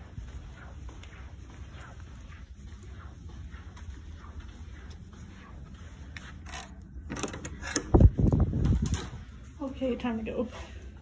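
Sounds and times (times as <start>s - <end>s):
steady low hum: 0.0s - 11.0s
door handle and latch clicking: 6.5s - 8.0s.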